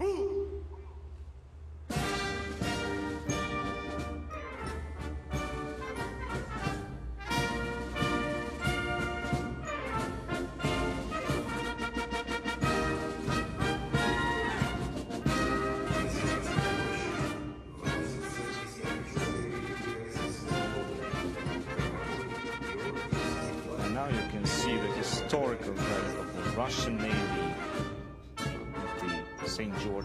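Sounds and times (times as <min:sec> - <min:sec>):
brass band music: 0:01.9 - 0:30.0.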